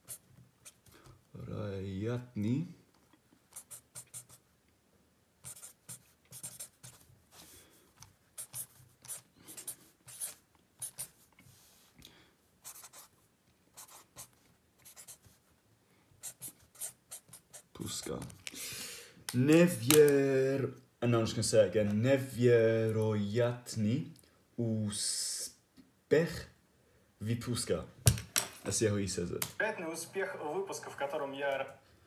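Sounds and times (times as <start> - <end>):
pen scratching on paper: 0.0 - 0.9, 3.5 - 4.4, 5.4 - 7.5, 8.3 - 11.2, 12.6 - 13.1, 13.7 - 15.4, 16.2 - 17.7.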